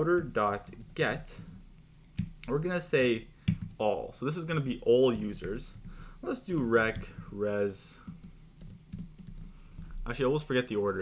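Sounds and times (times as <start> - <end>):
typing on computer keyboard: 0.1 - 1.6, 2.2 - 2.4, 3.5 - 3.8, 5.1 - 7.3, 8.0 - 9.8.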